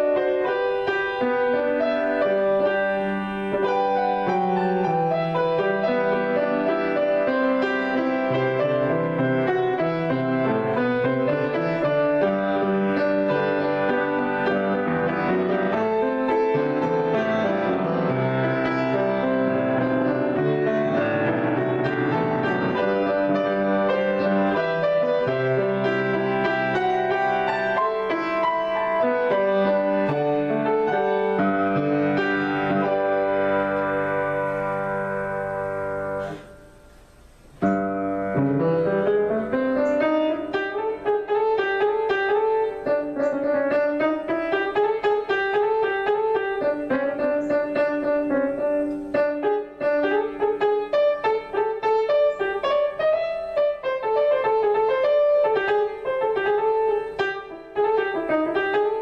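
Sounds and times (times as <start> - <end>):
grand piano improvisation: 0.0 - 59.0.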